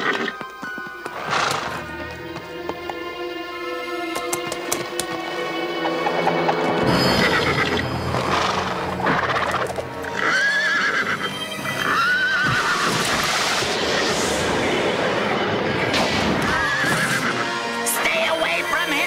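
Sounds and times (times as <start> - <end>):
horse whinnying: 0.0 - 0.4, 1.1 - 1.9, 5.8 - 13.5, 16.4 - 17.6
background music: 0.0 - 19.0.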